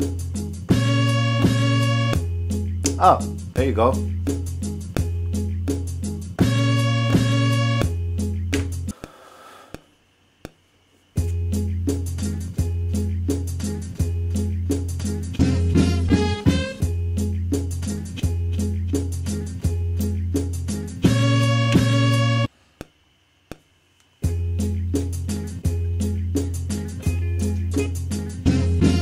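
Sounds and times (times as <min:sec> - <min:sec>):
boom-bap beat with deep bass: 0:00.0 - 0:09.0, 0:11.2 - 0:22.5, 0:24.2 - 0:29.0
faint hiss: 0:08.9 - 0:11.3.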